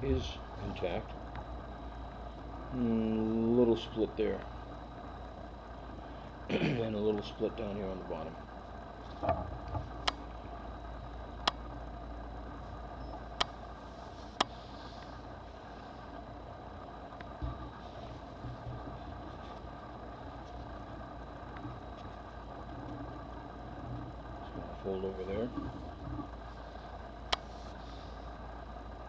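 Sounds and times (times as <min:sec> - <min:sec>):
low background hum: 0:00.0 - 0:29.0.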